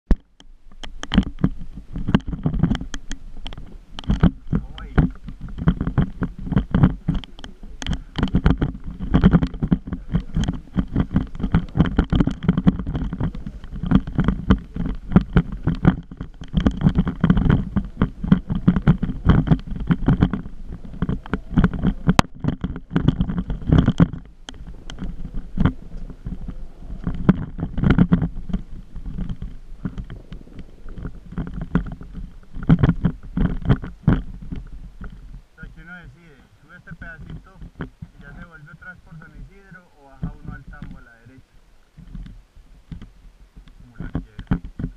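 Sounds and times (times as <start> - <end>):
knocks and rattles: 0.1 - 35.3, 43.9 - 44.9
low rumble: 1.5 - 44.9.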